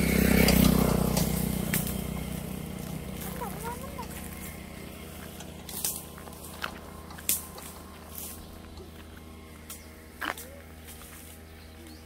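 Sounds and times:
low motor hum: 0:00.0 - 0:12.0
branches snapping and cracking: 0:05.2 - 0:11.4.

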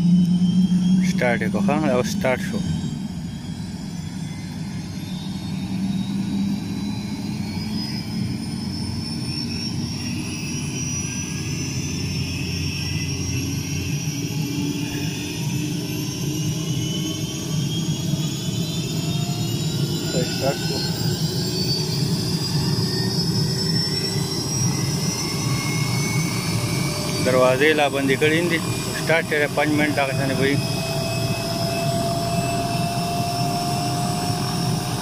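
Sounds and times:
helicopter engine drone: 0:00.0 - 0:35.0
rotor whine rising in pitch: 0:00.0 - 0:35.0.

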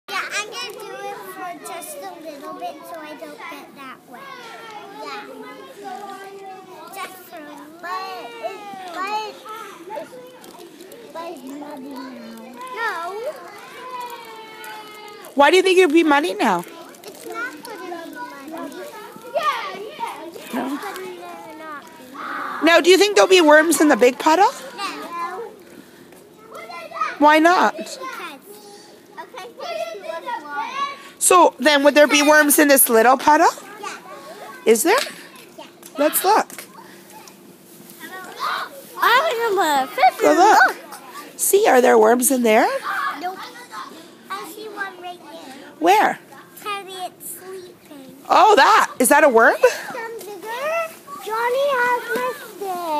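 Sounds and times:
young children chattering: 0:00.1 - 0:52.9.

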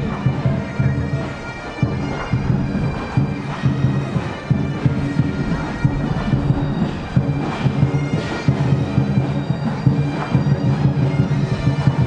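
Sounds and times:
bagpipes and brass: 0:00.0 - 0:12.0
bass and snare drums: 0:01.8 - 0:12.0.

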